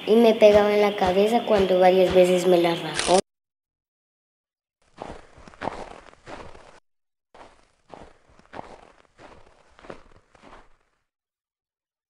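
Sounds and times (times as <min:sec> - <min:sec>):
soft scuffing steps: 0:04.8 - 0:06.8, 0:07.4 - 0:11.0.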